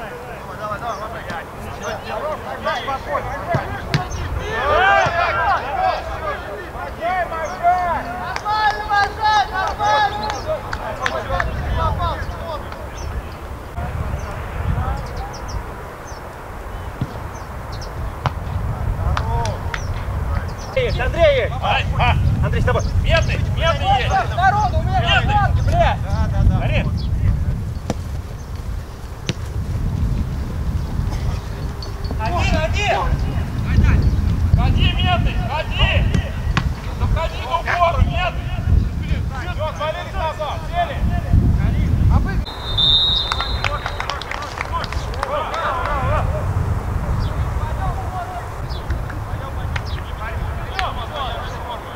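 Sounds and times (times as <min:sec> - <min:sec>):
distant shouts of players: 0:00.0 - 0:16.2, 0:42.4 - 0:46.5
football being kicked: 0:03.5 - 0:04.2, 0:17.0 - 0:17.2, 0:18.2 - 0:18.6, 0:27.8 - 0:28.6, 0:29.2 - 0:29.6, 0:36.1 - 0:36.9
wind on microphone: 0:10.0 - 0:51.9.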